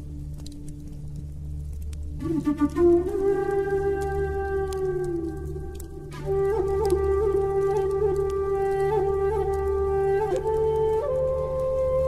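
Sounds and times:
flute holding long note: 2.1s - 12.0s.

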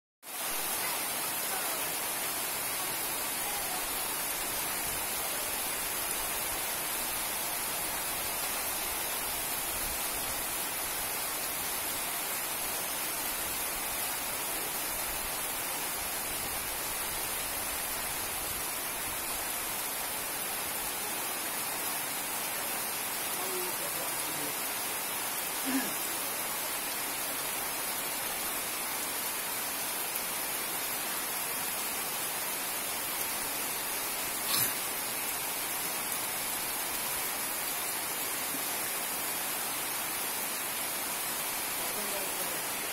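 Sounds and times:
heavy rain on waterlogged ground: 0.2s - 42.9s.

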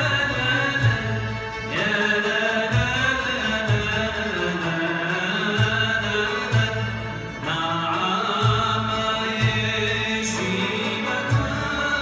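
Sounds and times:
orchestra of strings and drums: 0.0s - 12.0s.

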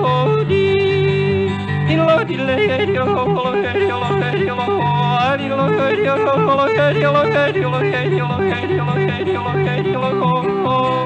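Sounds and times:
acoustic guitar: 0.0s - 11.0s
man yodeling: 0.0s - 11.0s.

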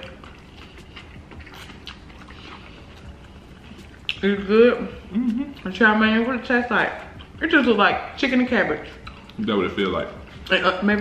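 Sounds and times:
low steady hum: 0.0s - 11.0s
people chewing food: 0.0s - 11.0s.

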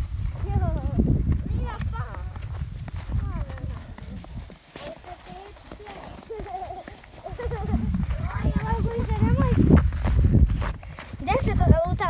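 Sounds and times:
footsteps crunching in snow: 0.0s - 11.9s
sled runners sliding over snow: 0.0s - 12.0s
young children's voices: 0.3s - 2.4s, 3.0s - 10.2s, 11.0s - 12.0s.

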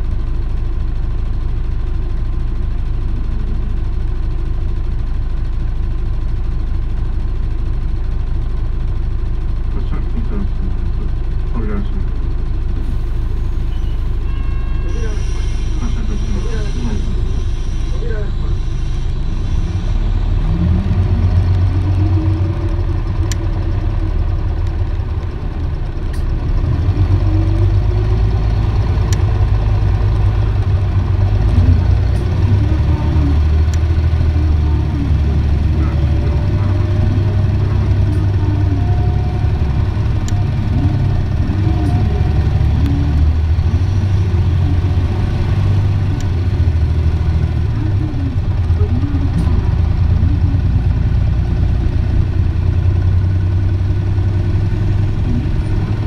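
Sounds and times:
bus engine rumbling: 0.0s - 56.0s
rising whine: 12.7s - 56.0s.

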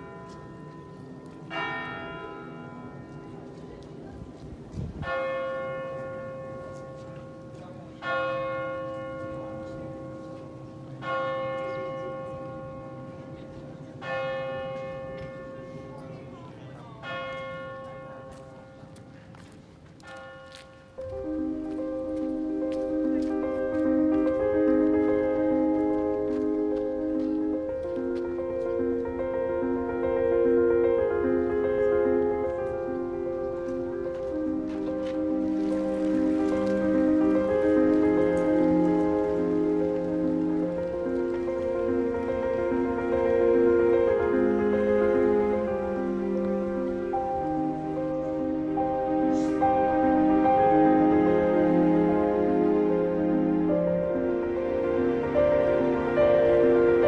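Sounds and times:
church bell tolling: 0.0s - 19.4s, 20.0s - 57.0s
slow sustained chords: 20.5s - 57.0s.

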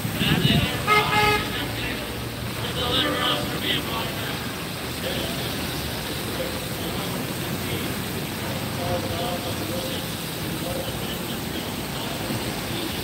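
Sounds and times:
cars driving on wet pavement: 0.0s - 13.0s
car horn toot: 0.8s - 1.6s.

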